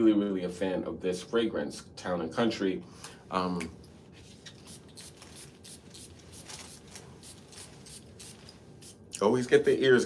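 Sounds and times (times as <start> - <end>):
cologne atomizer spritzing: 4.5 - 9.0.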